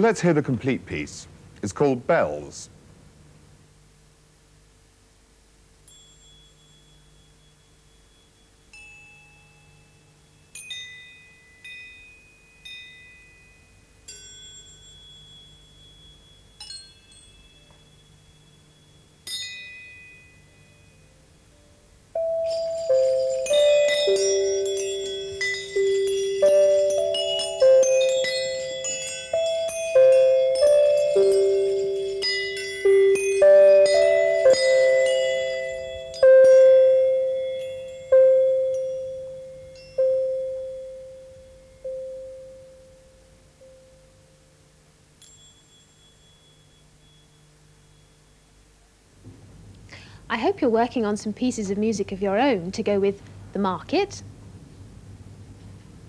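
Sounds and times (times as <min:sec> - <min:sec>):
metallophone notes: 0:05.6 - 0:49.2
metal percussion ensemble: 0:05.9 - 0:44.2.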